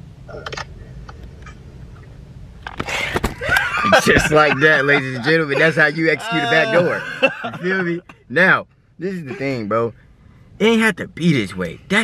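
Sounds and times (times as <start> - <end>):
car cabin hum: 0.0 - 12.0
men laughing and whooping: 3.2 - 8.2.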